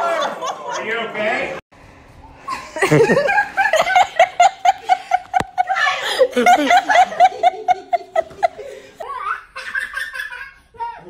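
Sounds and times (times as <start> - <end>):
person laughing hard: 2.5 - 10.5.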